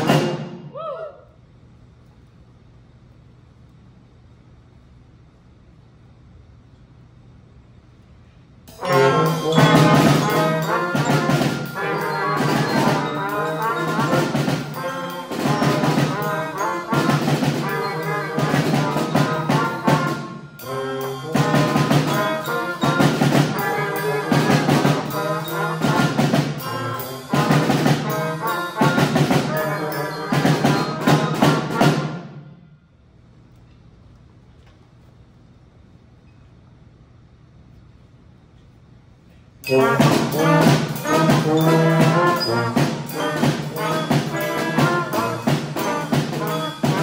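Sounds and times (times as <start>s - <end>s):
wind band playing: 0.0s - 0.7s, 8.7s - 32.6s, 39.6s - 47.0s
drum set: 0.0s - 0.8s, 8.7s - 32.5s, 39.6s - 47.0s.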